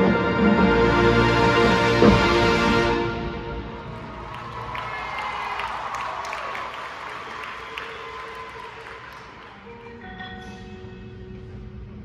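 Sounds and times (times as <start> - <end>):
marching band playing: 0.0 - 3.9.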